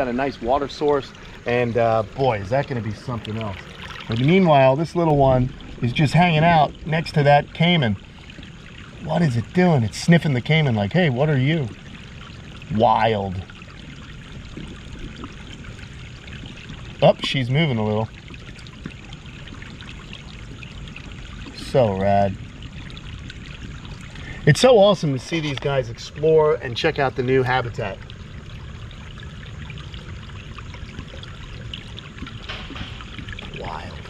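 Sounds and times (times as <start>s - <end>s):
waterfall splashing into pond: 0.0s - 34.0s.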